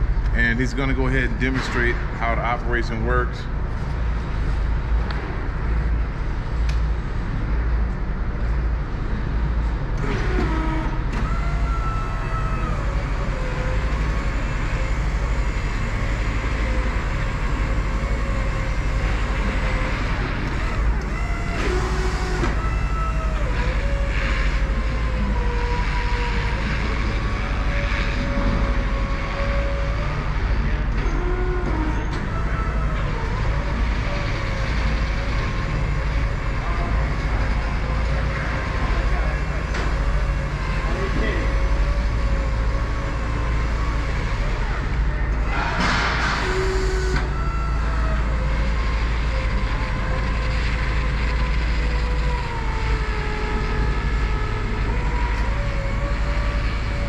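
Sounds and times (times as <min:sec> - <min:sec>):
scissor lift low hum: 0:00.0 - 0:57.0
electric motor whine: 0:09.9 - 0:45.6, 0:46.3 - 0:57.0.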